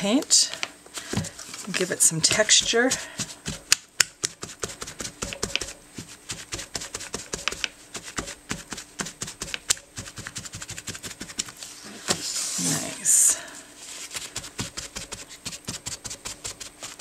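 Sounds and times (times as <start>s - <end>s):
paper towel dabbing on paper: 13.8s - 17.0s.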